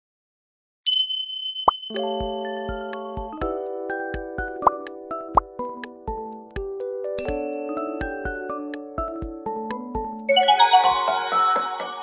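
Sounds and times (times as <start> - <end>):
high bell-like chime: 0.9 - 3.0, 7.2 - 8.6, 10.3 - 12.0
music: 1.9 - 12.0.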